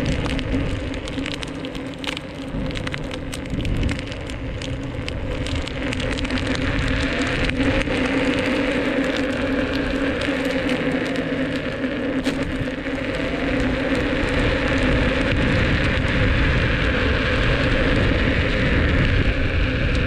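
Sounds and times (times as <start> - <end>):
electric motor hum: 0.0 - 20.0
tyre noise on asphalt: 0.0 - 20.0.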